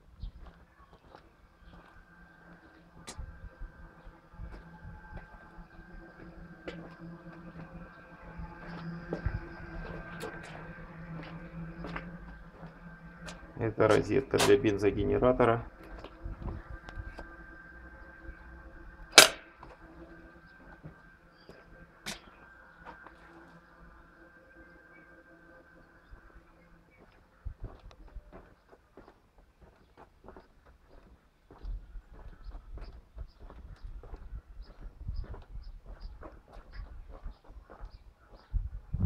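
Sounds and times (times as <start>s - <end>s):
faint steady hum: 0.0s - 37.0s
footsteps on concrete: 0.3s - 2.0s, 27.0s - 38.5s.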